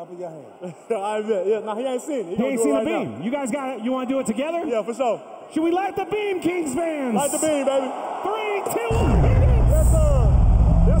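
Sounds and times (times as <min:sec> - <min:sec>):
deep droning blast over speakers: 0:08.9 - 0:11.0.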